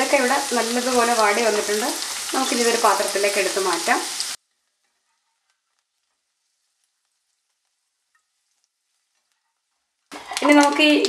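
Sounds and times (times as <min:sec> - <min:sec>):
faint crackles: 0:00.0 - 0:11.0
faint sizzle of frying: 0:00.0 - 0:11.0.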